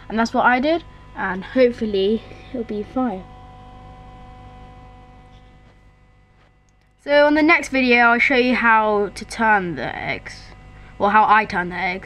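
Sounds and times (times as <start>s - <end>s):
small fan motor humming: 0.0s - 12.0s.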